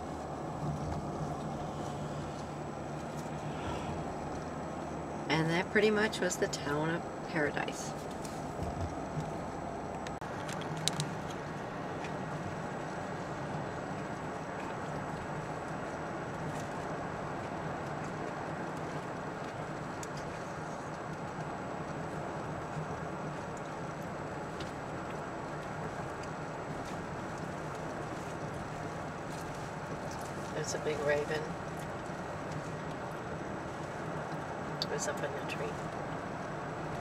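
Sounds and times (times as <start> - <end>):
car engine hum: 0.0 - 37.0.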